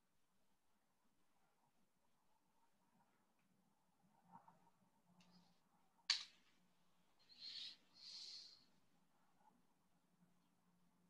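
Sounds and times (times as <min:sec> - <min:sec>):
person breathing into microphone: 0:07.3 - 0:08.7.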